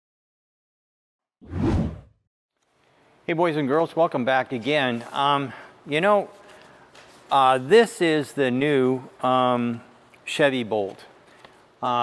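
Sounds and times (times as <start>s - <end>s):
whoosh sound effect: 1.4s - 2.1s.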